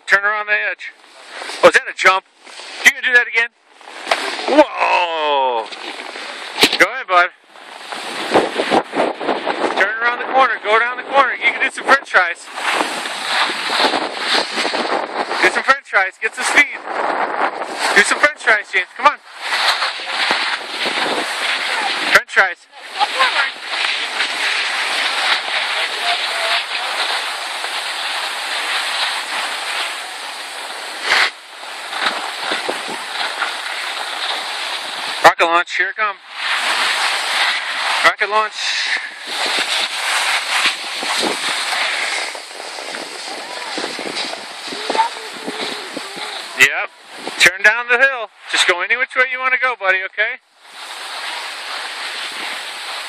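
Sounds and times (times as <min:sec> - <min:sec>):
skis hissing over snow: 0:01.0 - 0:49.0, 0:50.6 - 0:53.0
wind on microphone: 0:07.6 - 0:35.2, 0:38.8 - 0:47.5.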